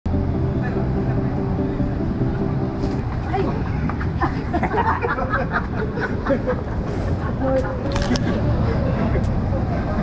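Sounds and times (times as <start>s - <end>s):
street traffic engine hum: 0.1s - 10.0s
people's voices: 0.3s - 10.0s.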